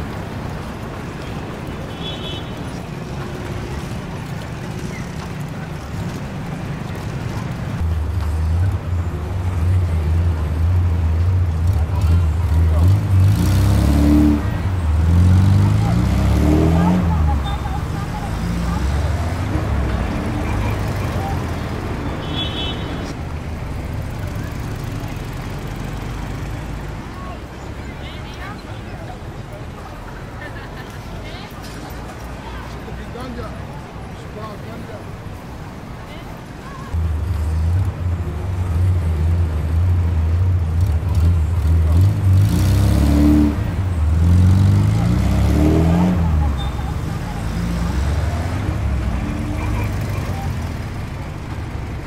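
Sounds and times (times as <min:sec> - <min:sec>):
street crowd chatter: 0:00.0 - 0:52.0
vehicle engine passing by: 0:03.0 - 0:27.6, 0:36.9 - 0:52.0.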